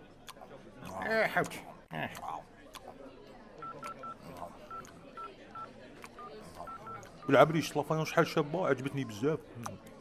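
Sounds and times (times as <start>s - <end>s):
murmur of voices: 0.0s - 10.0s
phone keypad beeps: 3.6s - 7.6s.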